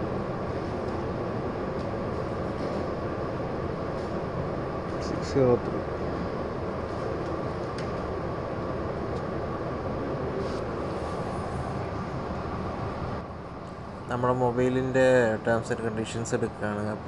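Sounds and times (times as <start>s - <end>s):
faint constant hum: 0.0s - 17.0s
steady hiss and rumble: 0.0s - 17.0s.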